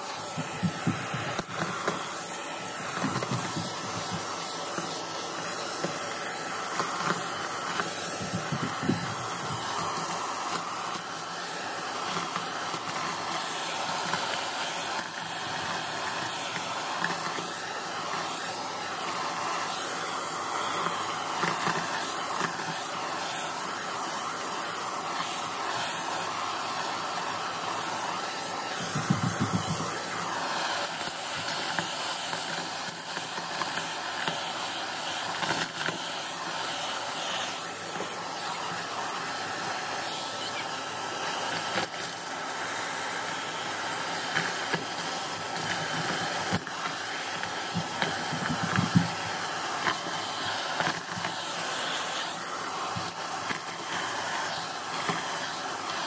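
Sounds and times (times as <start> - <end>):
vacuum cleaner running: 0.0 - 56.0.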